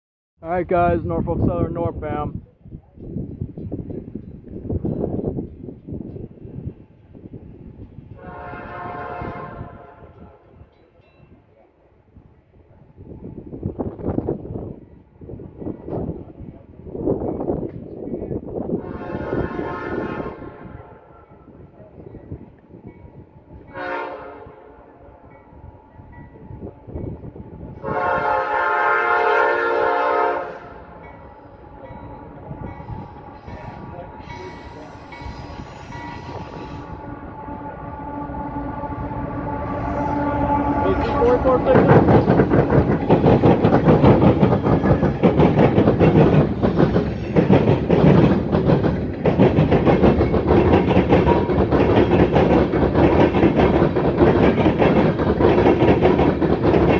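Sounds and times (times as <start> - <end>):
rumble of approaching locomotives: 0.4 - 56.9
locomotive air horn blasts: 8.2 - 10.6, 18.8 - 21.2, 23.7 - 25.2, 27.8 - 30.9, 34.7 - 41.7.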